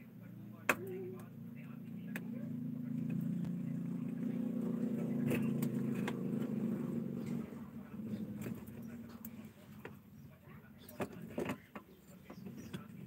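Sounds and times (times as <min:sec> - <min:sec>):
low engine-like hum: 0:00.0 - 0:11.3.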